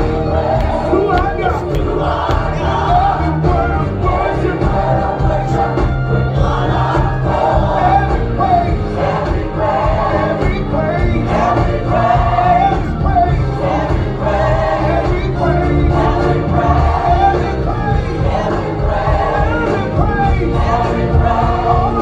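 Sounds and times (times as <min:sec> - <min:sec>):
group of voices singing: 0:00.0 - 0:22.0.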